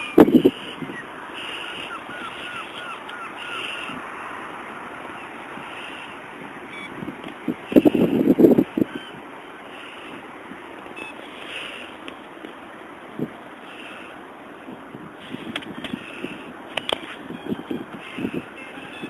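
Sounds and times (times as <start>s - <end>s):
short calls: 0.0s - 4.4s
wind buffeting microphone: 0.0s - 9.4s, 14.6s - 19.0s.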